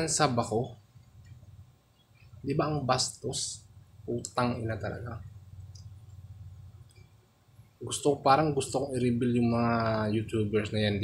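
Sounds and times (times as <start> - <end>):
man talking: 0.0 - 0.8, 2.4 - 5.3, 7.8 - 11.0
low steady hum: 0.0 - 11.0
faint clicks: 5.5 - 6.2.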